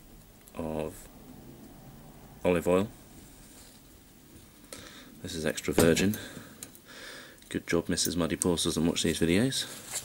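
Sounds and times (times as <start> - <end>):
faint handling noise: 7.4 - 10.0.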